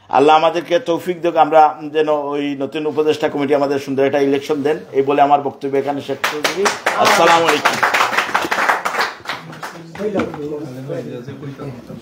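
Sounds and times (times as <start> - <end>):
people clapping: 6.1 - 10.4.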